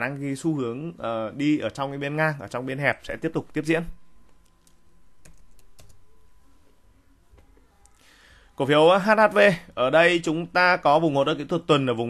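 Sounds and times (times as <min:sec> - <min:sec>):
computer keyboard keystrokes: 0:04.6 - 0:06.0.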